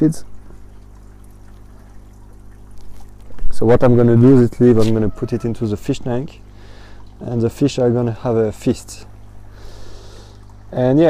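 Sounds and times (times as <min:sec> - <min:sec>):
constant low hum: 0:00.0 - 0:11.0
water trickling in tank: 0:00.0 - 0:11.0.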